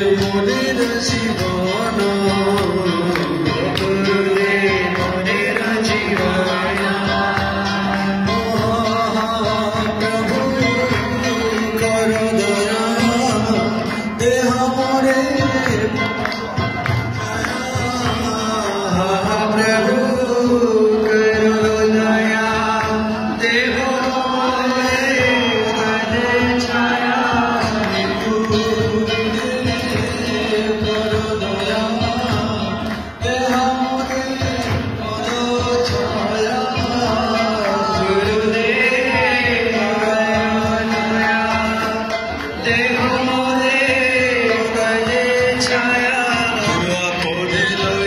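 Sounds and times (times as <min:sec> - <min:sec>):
group devotional chanting: 0:00.0 - 0:48.0
musical accompaniment: 0:00.0 - 0:48.0.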